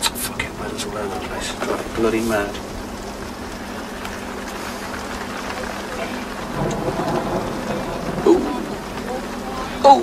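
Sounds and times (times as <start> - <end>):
heavy rain on roof and windows: 0.0 - 10.0.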